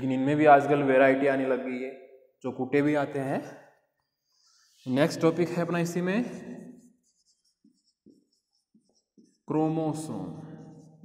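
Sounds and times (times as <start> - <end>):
marker writing on whiteboard: 3.8 - 11.0
person speaking: 4.7 - 11.0.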